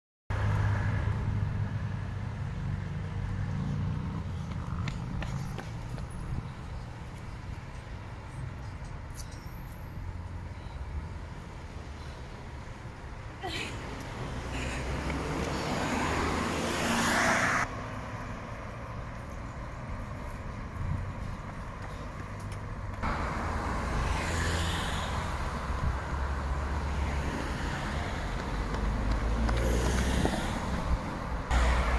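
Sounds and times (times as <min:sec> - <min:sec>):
low rumble of traffic: 0:00.3 - 0:31.9
car driving past: 0:14.3 - 0:18.5, 0:23.0 - 0:30.8.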